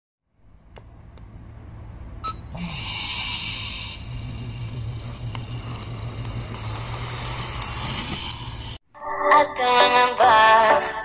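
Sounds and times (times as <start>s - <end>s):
toy car wheels rolling on wood: 4.1s - 8.8s.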